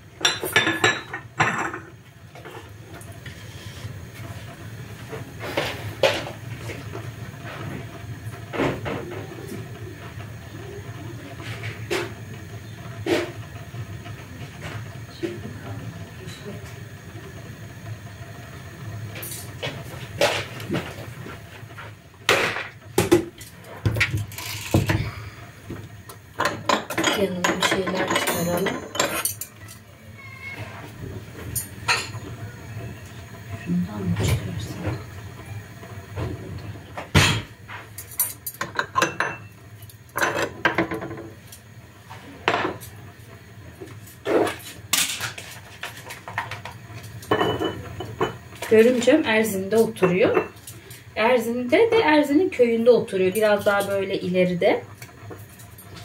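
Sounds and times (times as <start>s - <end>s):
porcelain cups clinking: 26.4s - 29.5s.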